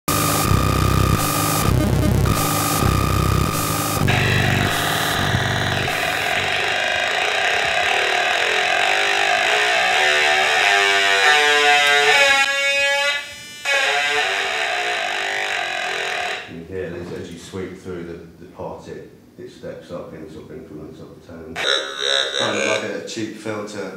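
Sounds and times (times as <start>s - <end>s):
buzzy synth tones: 0.0s - 16.5s, 21.6s - 23.1s.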